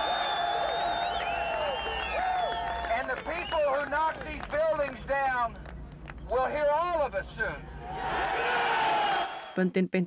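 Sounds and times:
crowd cheering and whooping: 0:00.0 - 0:03.7, 0:07.8 - 0:09.6.

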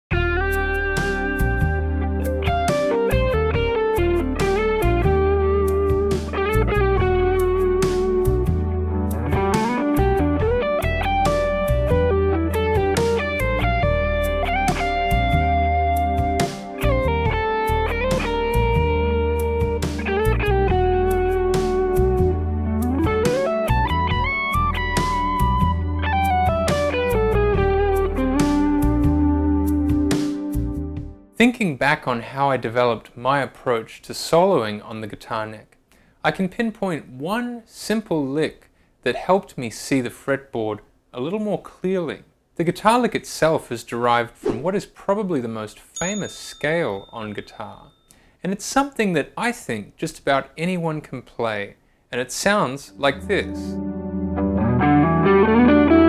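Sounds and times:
low bass accompaniment: 0:00.1 - 0:31.2, 0:52.9 - 0:56.0
electric guitar lead solo: 0:00.2 - 0:07.6, 0:08.8 - 0:11.2, 0:11.9 - 0:24.8, 0:52.9 - 0:56.0.

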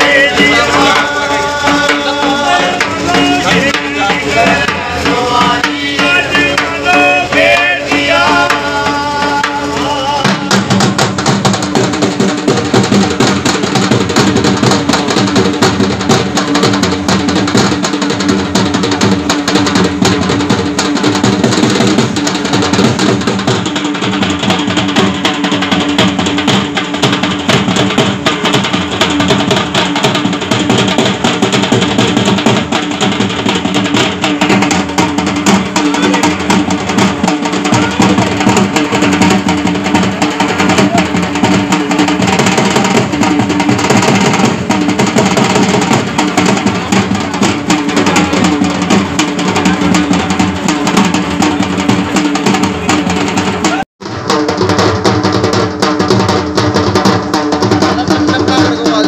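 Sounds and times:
dhol drum beating: 0:00.0 - 0:59.0.

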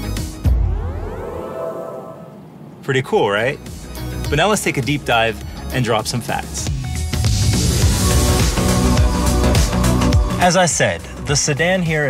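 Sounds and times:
rising electronic sweep: 0:00.3 - 0:02.8.

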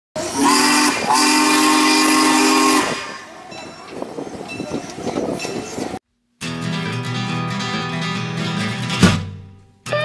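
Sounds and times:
steam locomotive whistle: 0:00.2 - 0:03.4.

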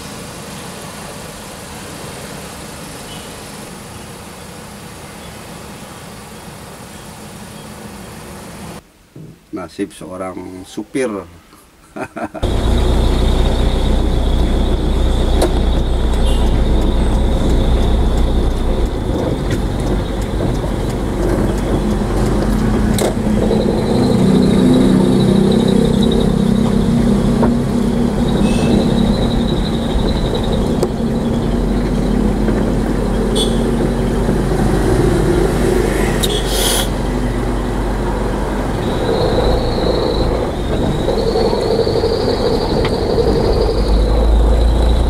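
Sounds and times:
vehicle engine and road rumble: 0:12.4 - 0:45.0.

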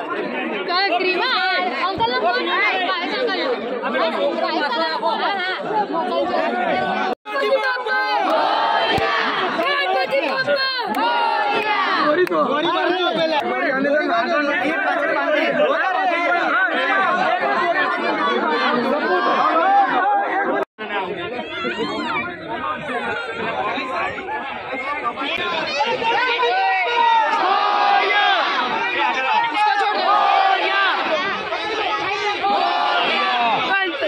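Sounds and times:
crowd talking: 0:00.0 - 0:34.0.

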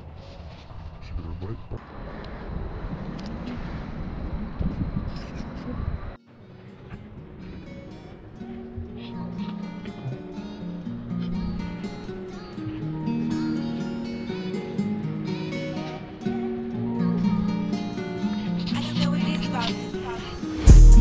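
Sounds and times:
dense outdoor rumble: 0:00.0 - 0:06.2.

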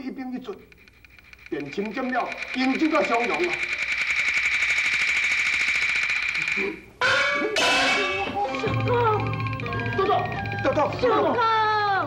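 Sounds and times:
steady ringing tone: 0:00.7 - 0:11.3.

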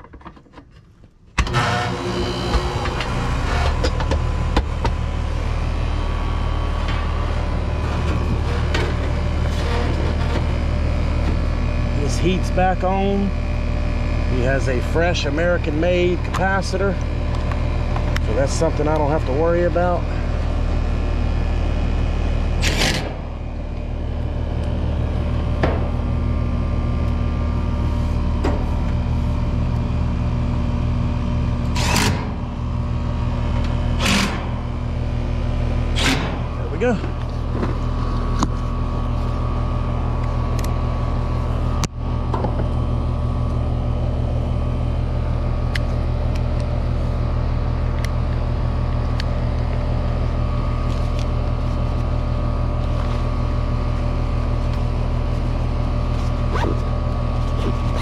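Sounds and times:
outdoor unit humming: 0:00.0 - 0:58.0.

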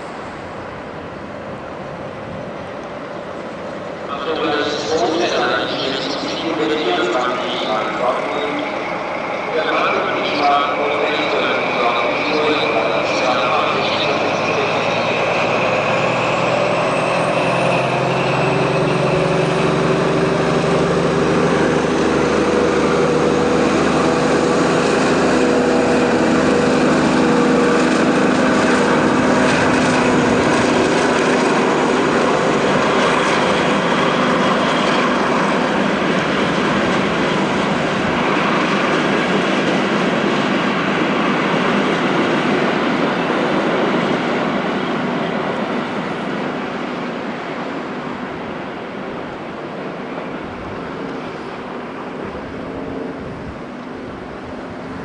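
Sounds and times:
diesel locomotive engine running: 0:00.0 - 0:55.0
train rumbling on rails: 0:00.0 - 0:55.0.

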